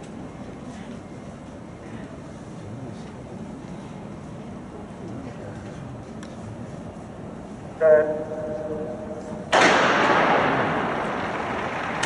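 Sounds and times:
stadium crowd noise: 1.8s - 12.0s
starting gun shot echoing: 9.5s - 12.0s.

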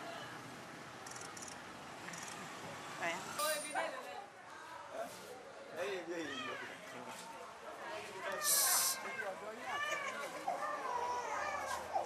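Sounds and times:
background chatter: 2.4s - 12.0s
short loud hiss: 8.4s - 9.0s.

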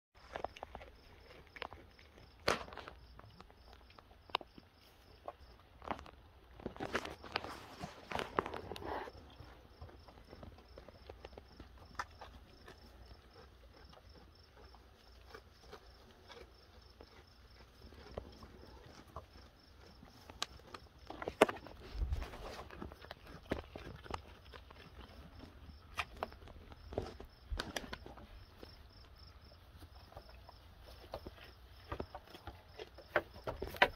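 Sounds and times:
hooves knocking on wooden boards: 31.0s - 33.9s.

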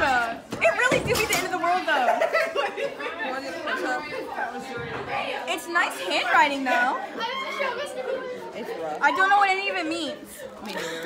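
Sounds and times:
background chatter: 0.0s - 11.0s
people talking nearby: 0.0s - 11.0s.

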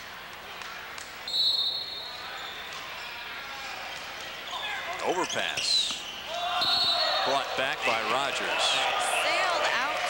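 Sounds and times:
gym crowd noise: 0.0s - 10.0s
referee's whistle: 1.3s - 2.7s, 4.5s - 7.3s.

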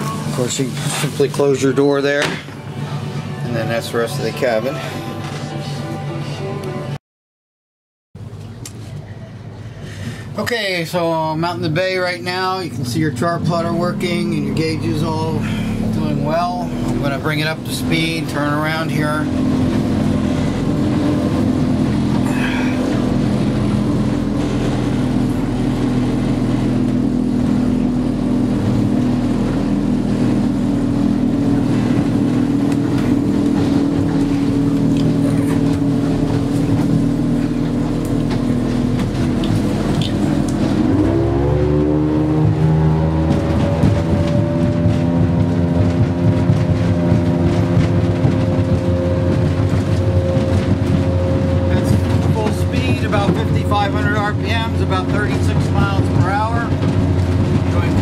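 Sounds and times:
outboard engine running: 0.0s - 7.0s, 8.2s - 58.0s.

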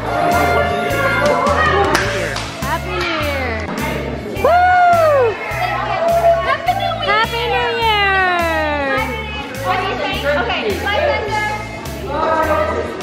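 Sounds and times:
music with steady beat: 0.0s - 13.0s
people shouting and whooping: 4.3s - 9.6s.

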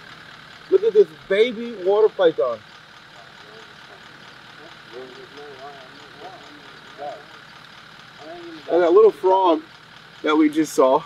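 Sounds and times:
faint voices talking: 0.6s - 11.0s
steady background hum: 0.7s - 10.9s.

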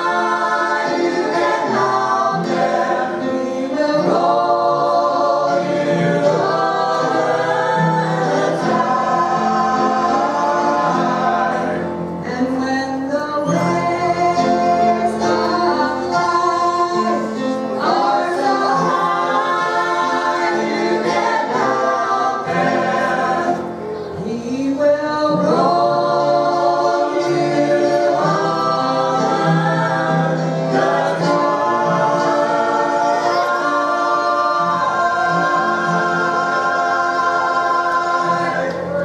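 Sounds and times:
vocal quartet singing in harmony: 0.0s - 39.0s.

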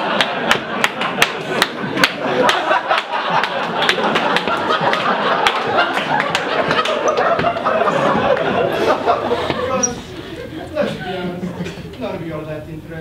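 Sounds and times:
hand claps: 0.0s - 7.7s
large audience laughing: 0.0s - 11.9s.

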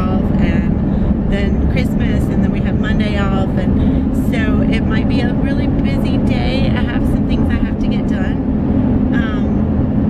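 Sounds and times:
woman talking: 0.0s - 8.5s, 9.1s - 9.6s
car cabin road rumble: 0.0s - 10.0s.

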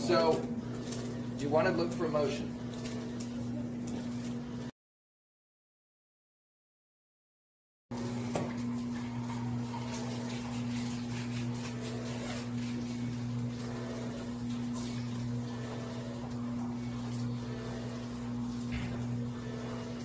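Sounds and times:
electric motor hum: 0.0s - 4.7s, 7.9s - 20.0s.

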